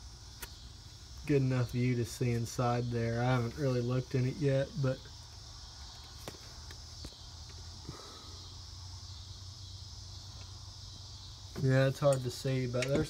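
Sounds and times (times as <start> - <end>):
crickets chirring: 0.0 - 13.0.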